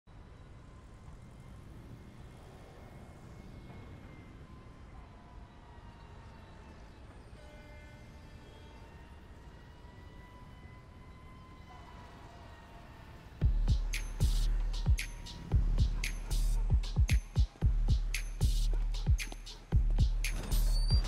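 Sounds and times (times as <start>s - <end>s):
faint low rumble: 13.4s - 21.0s.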